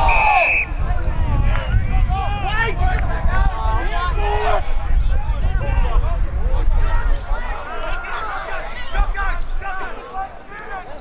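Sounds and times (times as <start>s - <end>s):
footballers shouting: 0.0s - 11.0s.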